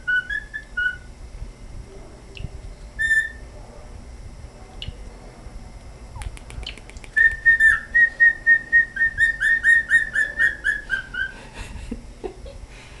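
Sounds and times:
cockatiel whistling: 0.0s - 1.1s, 3.0s - 3.4s, 7.2s - 11.3s.

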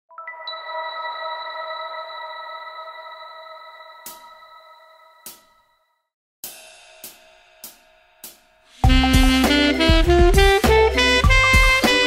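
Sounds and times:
bell-like electronic chord: 0.1s - 5.6s.

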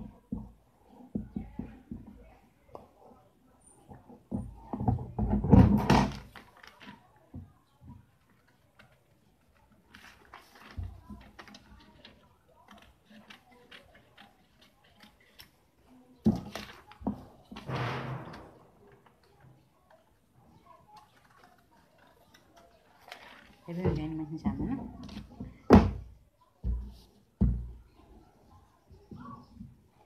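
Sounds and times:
paper rustling: 6.0s - 7.3s, 8.2s - 24.1s
scissors snipping paper: 8.7s - 17.0s
loud knock: 17.7s - 18.7s.

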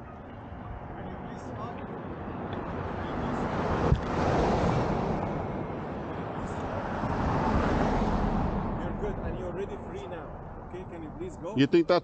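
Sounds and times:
vehicles passing: 0.1s - 12.0s.

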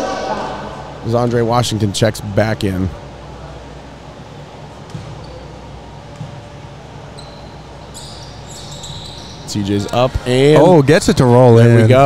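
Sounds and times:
gym hum: 0.0s - 12.0s
basketball bouncing on hardwood: 4.9s - 5.2s.

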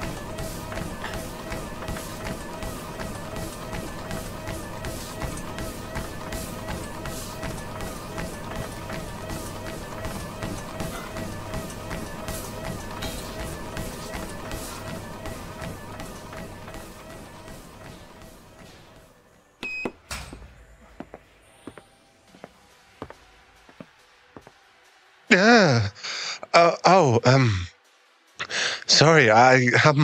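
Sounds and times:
running footfalls: 0.0s - 19.2s
music: 20.1s - 30.0s.

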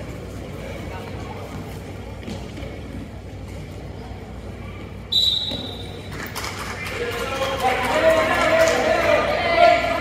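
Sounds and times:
referee whistle blowing: 5.1s - 6.0s.

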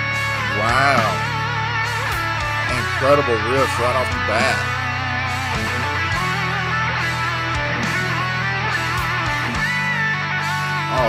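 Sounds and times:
electric guitars playing riffs: 0.0s - 11.0s
steady low notes: 0.0s - 11.0s.

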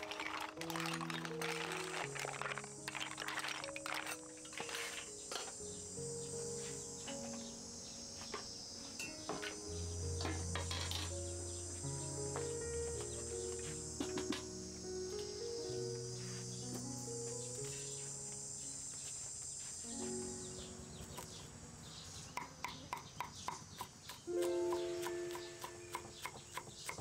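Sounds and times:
soft background music: 0.0s - 22.4s, 24.0s - 27.0s
high insect drone: 0.0s - 27.0s.

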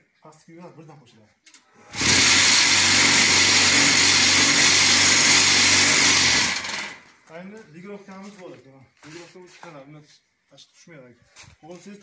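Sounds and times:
vibrator motor buzzing rattle: 1.9s - 7.1s.

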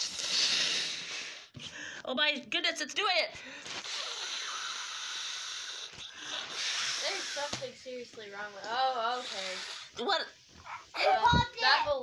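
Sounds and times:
air blown into balloon: 0.0s - 1.6s, 3.6s - 7.7s, 9.1s - 10.0s.

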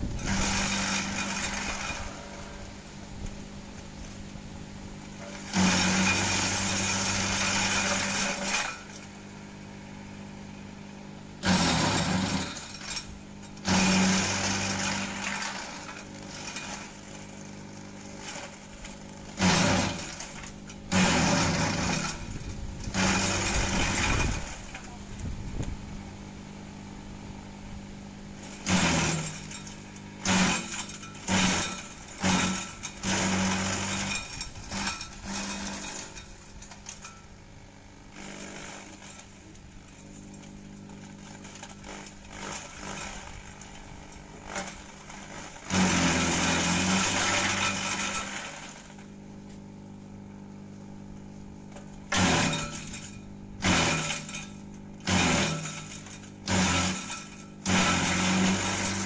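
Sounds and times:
branches chopping and shredding: 0.0s - 2.6s, 5.2s - 9.0s, 11.4s - 13.0s, 13.6s - 25.7s, 28.4s - 37.2s, 38.2s - 49.6s, 51.7s - 59.0s
shredder motor humming: 0.0s - 3.4s, 5.0s - 9.2s, 11.4s - 25.8s, 28.4s - 37.2s, 37.9s - 49.2s, 51.8s - 59.0s.

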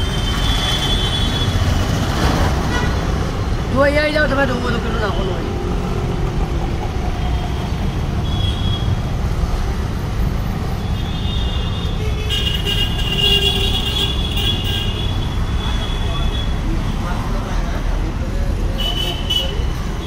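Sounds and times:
traffic rumble: 0.0s - 20.0s
vehicle horn honking: 11.0s - 16.5s.

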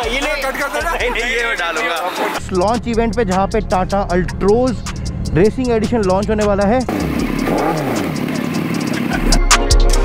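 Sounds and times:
motorcycle engine revving: 2.5s - 9.6s.

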